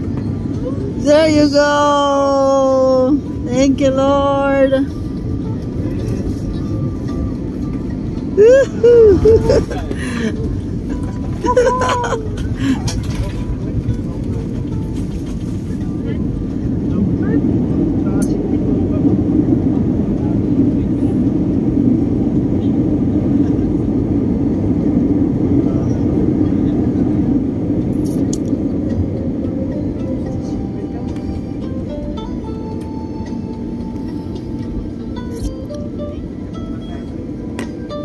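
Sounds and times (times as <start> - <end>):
jet cabin low rumble: 0.0 - 38.0.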